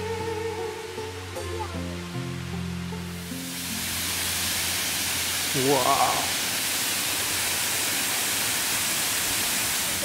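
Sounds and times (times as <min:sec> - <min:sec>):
slow background music: 0:00.0 - 0:06.4
waterfall rushing: 0:00.0 - 0:10.0.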